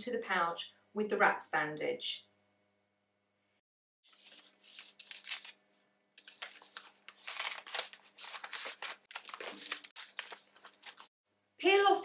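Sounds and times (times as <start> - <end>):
paper and plastic pouch crinkling: 4.1 - 5.6, 6.2 - 11.1.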